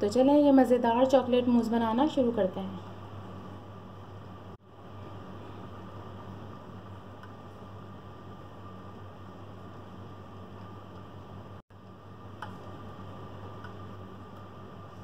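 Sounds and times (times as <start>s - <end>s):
room noise hum and hiss: 0.0s - 15.0s.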